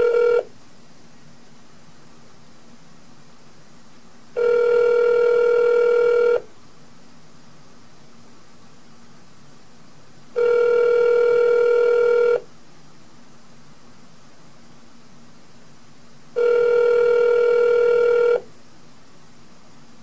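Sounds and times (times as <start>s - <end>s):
phone ringback tone: 0.0s - 0.5s, 4.4s - 6.5s, 10.4s - 12.4s, 16.4s - 18.5s.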